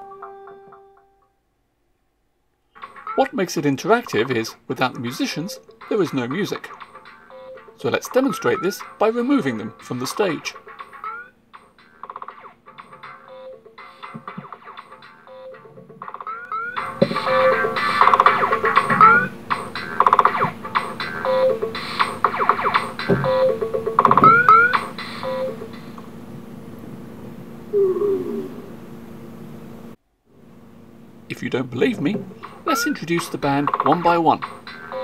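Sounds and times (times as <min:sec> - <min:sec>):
layered electronic music loops: 0:03.8 - 0:26.1, 0:32.0 - 0:35.0.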